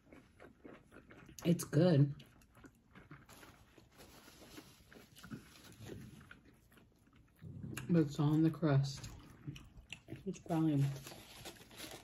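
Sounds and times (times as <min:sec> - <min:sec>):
people chewing food: 0:00.0 - 0:12.0.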